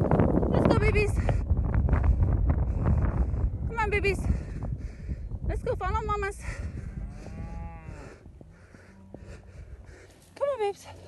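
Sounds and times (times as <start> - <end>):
low wind rumble: 0.0 - 11.0
cow mooing: 7.0 - 8.2.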